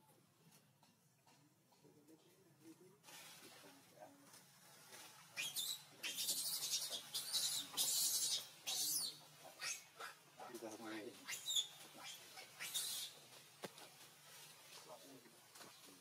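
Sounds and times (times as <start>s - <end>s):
birds chirping: 5.3s - 13.8s
wavering voice-like bird call: 11.2s - 13.2s.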